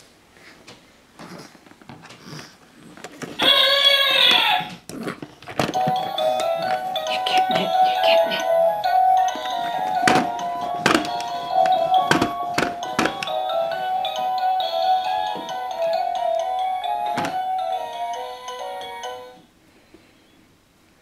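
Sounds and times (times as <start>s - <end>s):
electronic toy tune: 5.8s - 19.4s
plastic toy knocks: 9.9s - 13.4s.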